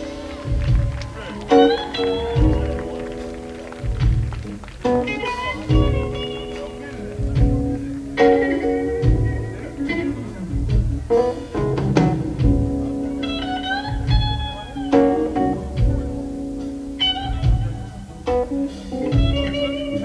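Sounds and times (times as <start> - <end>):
blues band playing: 0.0 - 20.0
electric guitar lead: 0.0 - 20.0.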